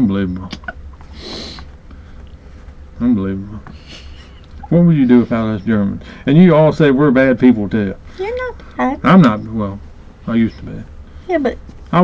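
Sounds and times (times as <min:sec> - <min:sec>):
steady low hum: 0:00.0 - 0:12.0
person breathing through nose: 0:01.1 - 0:02.1.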